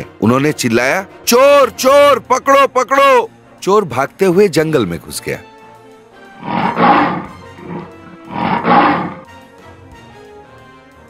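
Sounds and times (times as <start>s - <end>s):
quiet background music: 0.0s - 11.0s
lion roaring: 6.3s - 9.3s.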